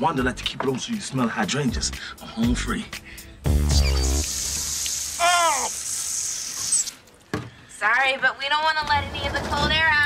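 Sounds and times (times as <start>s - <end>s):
water running from faucet: 3.8s - 7.2s
short high cry: 5.2s - 5.8s.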